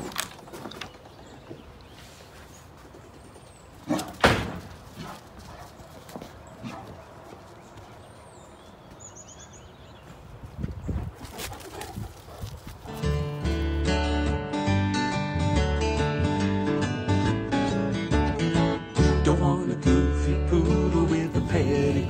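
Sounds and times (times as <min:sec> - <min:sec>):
outdoor background noise: 0:00.0 - 0:14.0
big dog barking: 0:03.9 - 0:04.3, 0:05.0 - 0:05.8, 0:06.6 - 0:07.2.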